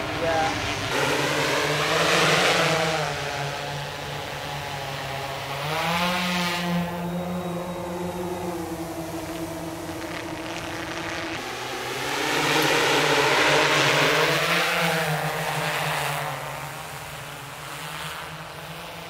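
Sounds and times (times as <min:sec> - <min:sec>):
drone propellers humming: 0:00.0 - 0:19.0.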